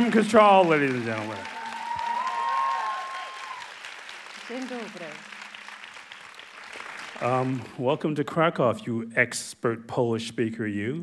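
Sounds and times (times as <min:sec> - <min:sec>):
audience applauding: 0:00.0 - 0:08.0.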